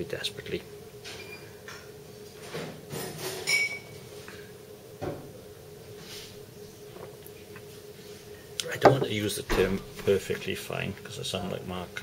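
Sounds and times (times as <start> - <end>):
glass clinking: 3.4 - 3.8.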